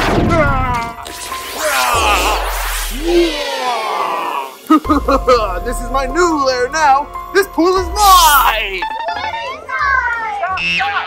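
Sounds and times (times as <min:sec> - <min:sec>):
voice-like falling tone: 0:01.6 - 0:04.6.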